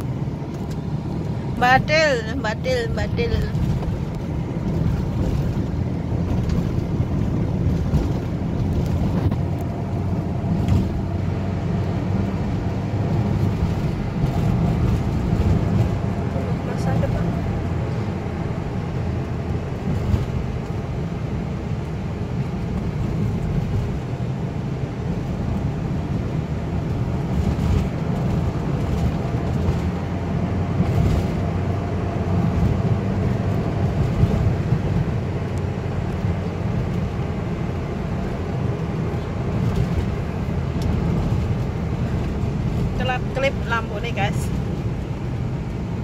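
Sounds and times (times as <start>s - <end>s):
car interior engine and road noise: 0.0s - 46.0s.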